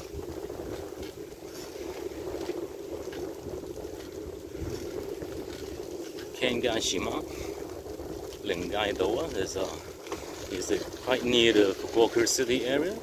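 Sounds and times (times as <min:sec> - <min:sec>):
bicycle rolling on concrete: 0:00.0 - 0:13.0
wind buffeting microphone: 0:00.0 - 0:13.0.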